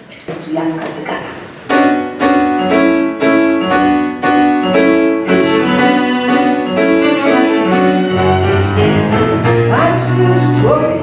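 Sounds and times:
piano chords: 1.2 - 11.0
low cello line: 2.2 - 11.0
violins bowed notes: 2.2 - 11.0.

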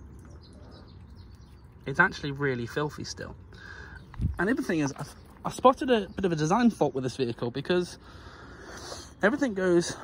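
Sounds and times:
faint bird chirps: 0.0 - 9.9.

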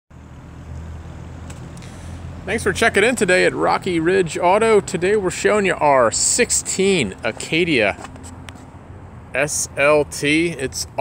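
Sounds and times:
vehicle engine humming: 0.1 - 11.0.

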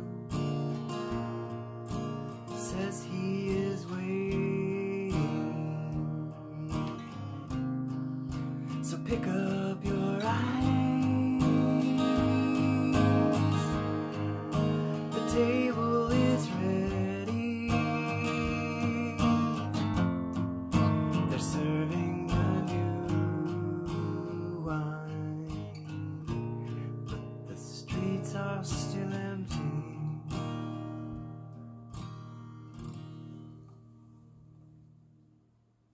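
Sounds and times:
acoustic guitar strumming: 0.0 - 35.4.

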